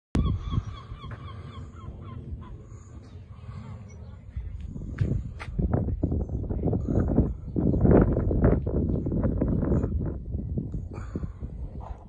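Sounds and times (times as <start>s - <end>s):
bird honking calls: 0.2s - 4.0s
low rumble: 0.2s - 12.0s.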